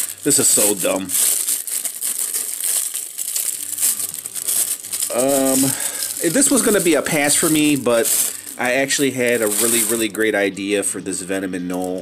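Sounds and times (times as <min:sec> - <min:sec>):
plastic bag crinkling and rustling: 0:00.0 - 0:10.8.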